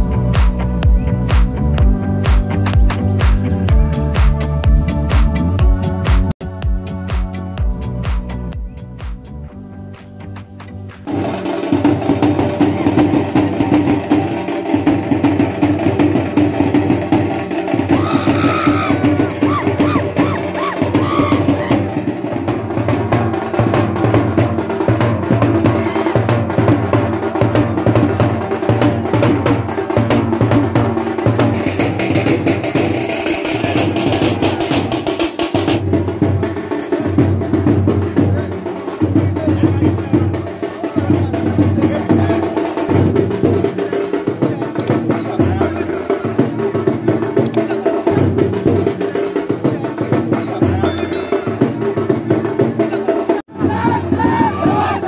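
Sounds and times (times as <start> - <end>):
steel drums beaten with sticks: 50.9 - 52.6.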